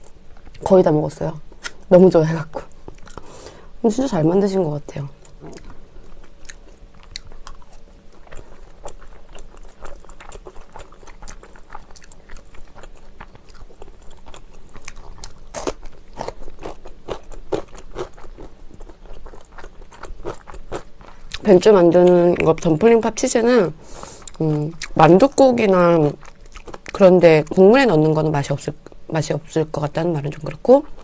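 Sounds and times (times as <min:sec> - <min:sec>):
person chewing with crunches: 0:02.7 - 0:03.5, 0:05.2 - 0:22.8, 0:23.8 - 0:27.6.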